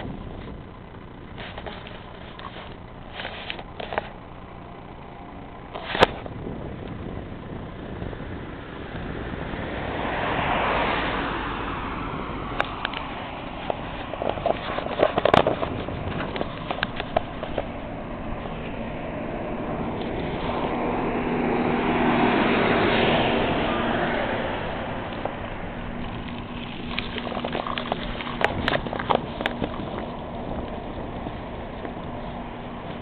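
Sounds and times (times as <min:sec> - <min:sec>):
car passing: 0:06.4 - 0:33.0
sharp clicks and knocks: 0:12.6 - 0:17.9, 0:25.1 - 0:33.0.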